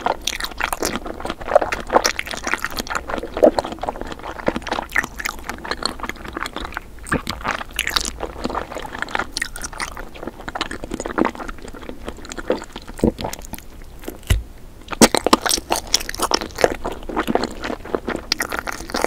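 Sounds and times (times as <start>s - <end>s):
chewing jelly sweet: 0.0s - 19.0s.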